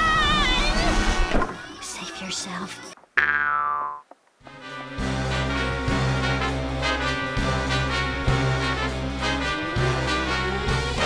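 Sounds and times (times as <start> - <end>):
music: 4.5 - 11.0.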